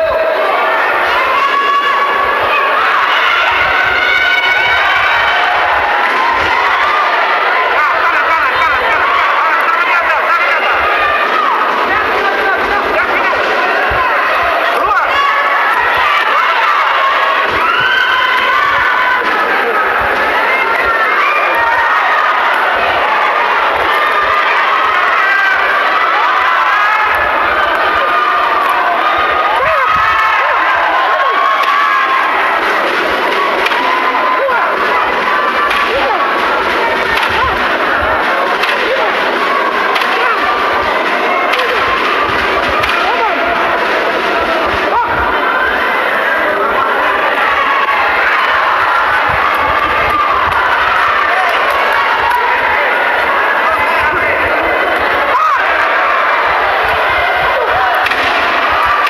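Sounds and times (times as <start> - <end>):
crowd shouting and cheering: 0.0 - 59.0.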